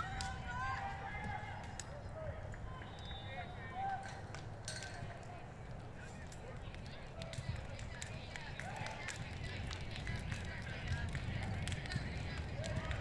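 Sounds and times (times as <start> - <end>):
voices chattering: 0.0 - 13.0.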